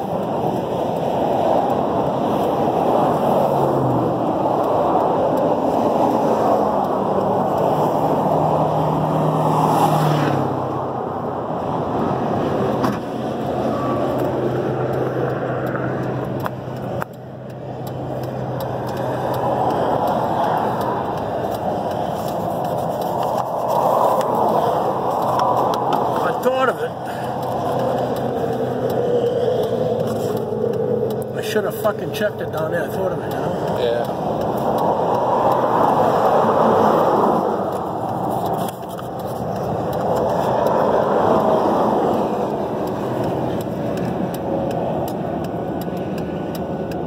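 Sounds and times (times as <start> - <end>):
vehicle engine running: 12.6 - 47.0
rushing noise: 17.8 - 47.0.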